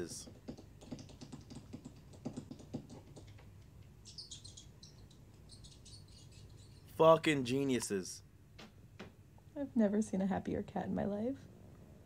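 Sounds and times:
quick high bird-like chirps: 4.0 - 7.0.

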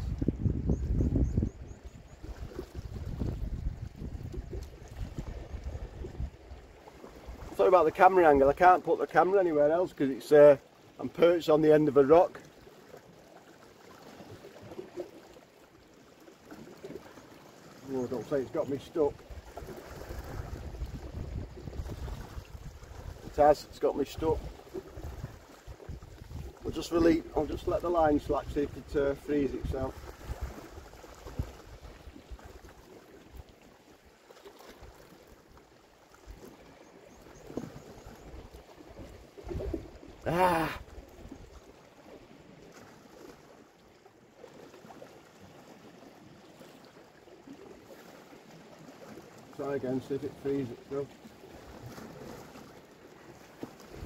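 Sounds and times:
wind rumbling on microphone: 0.0 - 7.6, 19.1 - 32.8, 36.3 - 41.6, 53.8 - 54.0
sea water washing against rocks: 17.8 - 33.4, 38.2 - 41.1.

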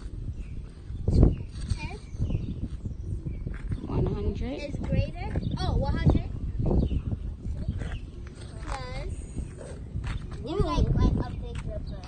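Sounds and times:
child's wordless voice: 7.1 - 12.0.

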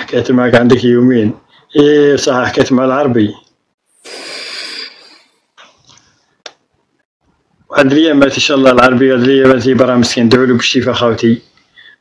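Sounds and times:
person breathing out hard: 4.0 - 5.4
faint short breaths: 4.0 - 6.4, 11.5 - 12.0.

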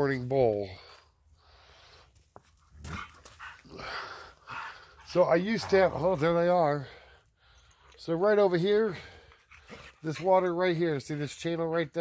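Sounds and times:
dog making breathy sounds: 2.9 - 5.8.

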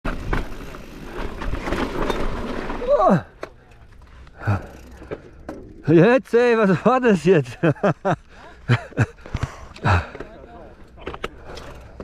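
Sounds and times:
bike tyres crunching on gravel: 0.1 - 5.4.

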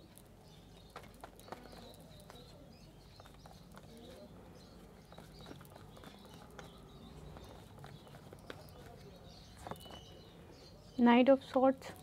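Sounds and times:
cards shuffling: 5.0 - 10.1.

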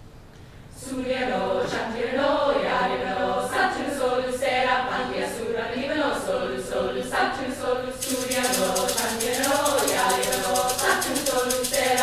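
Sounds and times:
large mixed choir singing: 0.7 - 12.0.

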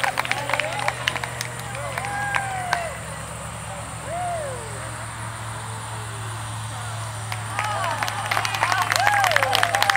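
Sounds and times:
low steady hum: 0.0 - 9.9
person whooing: 4.0 - 4.8.

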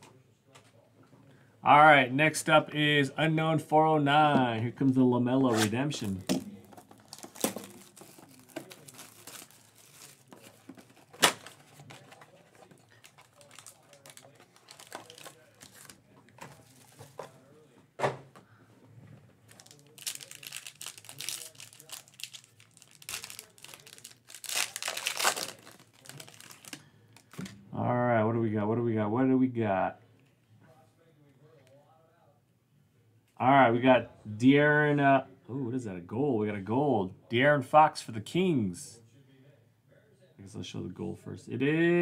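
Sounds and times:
foil wrapper crinkling and tearing: 6.8 - 16.0, 19.5 - 27.4.

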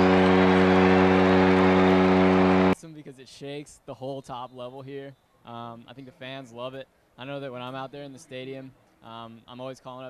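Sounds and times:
foghorn blast: 0.0 - 2.8.

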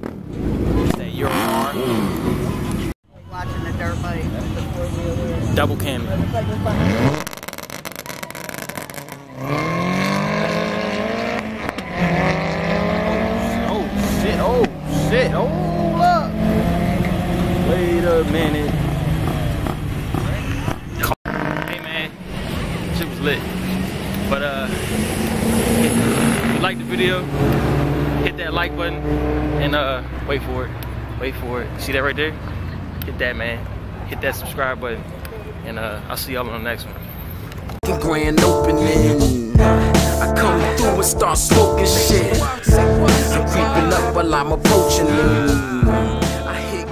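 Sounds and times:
drag racing cars accelerating: 0.0 - 2.9, 4.2 - 31.2.

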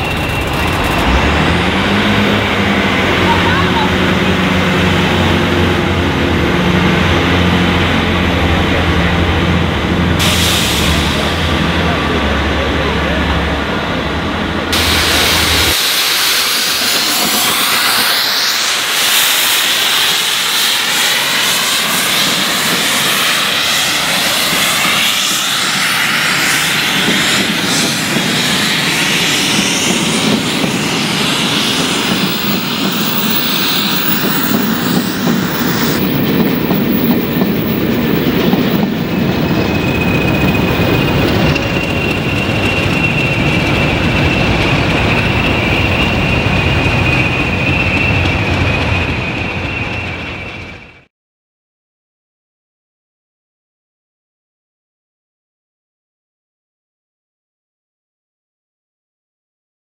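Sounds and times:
diesel locomotive whine: 0.0 - 51.1
steam locomotive passing: 0.0 - 51.1
loud steam hiss: 10.1 - 13.8, 14.7 - 50.3
train wheels clattering over rail joints: 31.8 - 50.9.

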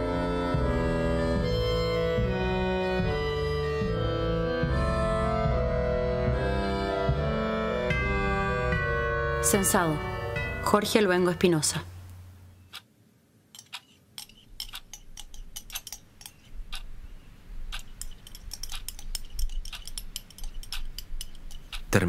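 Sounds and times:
spoon scraping ceramic mug: 13.6 - 16.6, 17.7 - 21.9.

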